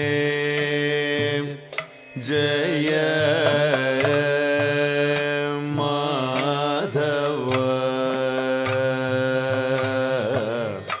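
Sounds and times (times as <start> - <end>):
solo voice singing slow melody: 0.0 - 11.0.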